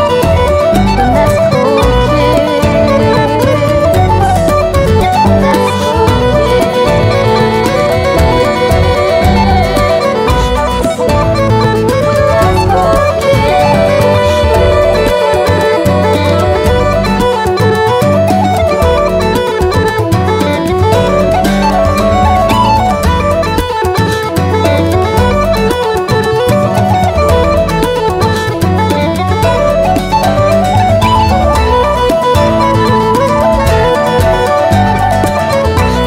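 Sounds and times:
bodhran beat: 0.0 - 36.0
guitar chords: 0.0 - 36.0
uilleann pipes and whistles melody: 0.0 - 36.0.

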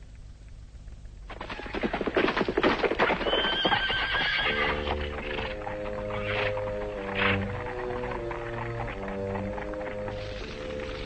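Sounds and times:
hoofbeats: 1.3 - 11.0
horse whinnying: 3.1 - 5.5
held music chords: 4.8 - 11.0.

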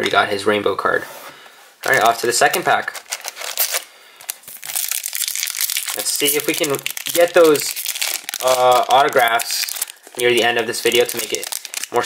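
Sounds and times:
foil wrapper crinkling: 1.8 - 12.0.

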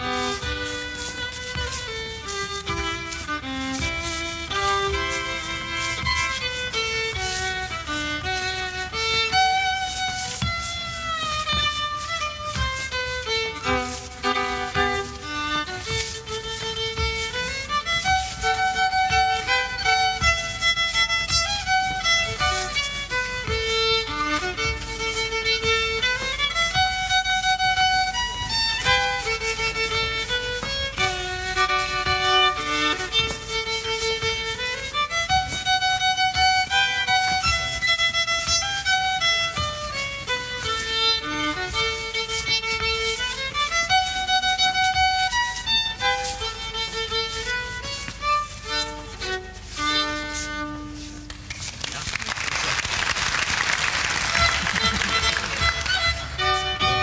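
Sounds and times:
solo fiddle folk tune: 0.0 - 51.7, 53.0 - 57.0.

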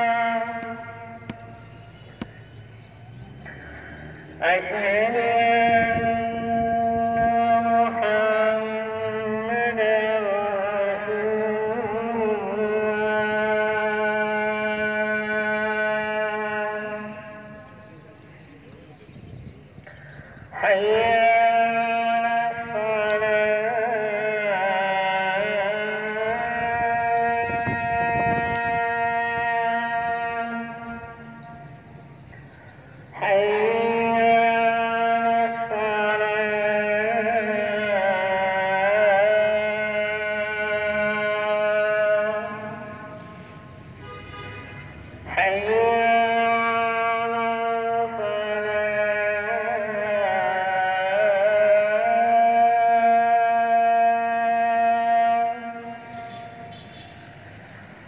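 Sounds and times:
man singing call to prayer: 0.0 - 58.0
outdoor background noise: 0.0 - 58.0.

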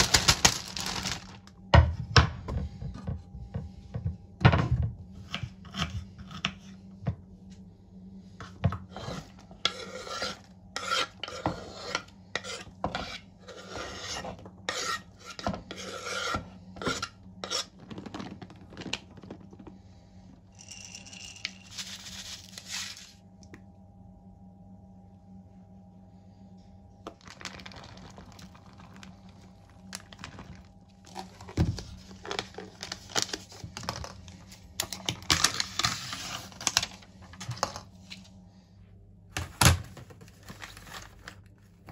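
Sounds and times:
vegetables swept into plastic bowl: 21.6 - 23.2.

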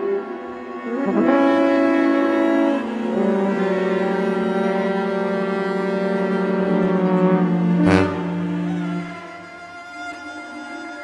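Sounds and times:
low held note: 6.2 - 9.7.

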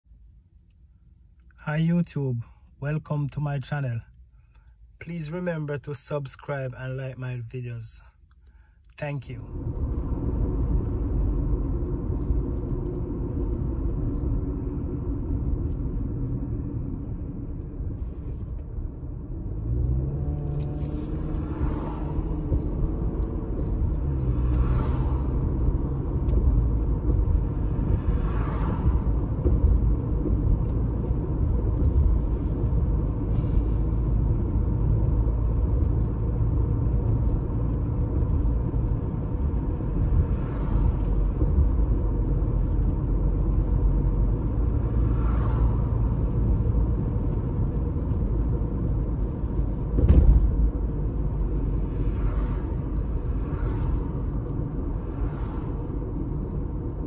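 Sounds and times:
car road noise rumble: 0.1 - 57.0
passing cars swishing: 9.5 - 57.0
car knock over bump: 49.9 - 50.6.

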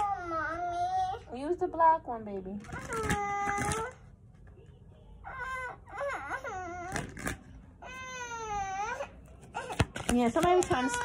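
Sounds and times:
young child whining cry: 5.2 - 9.8.

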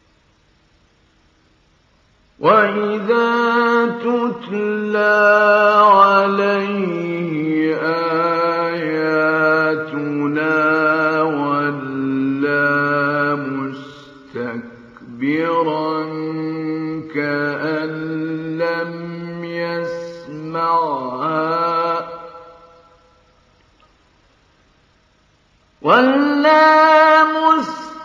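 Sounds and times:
man reciting melodically: 2.4 - 22.6, 25.8 - 28.0.

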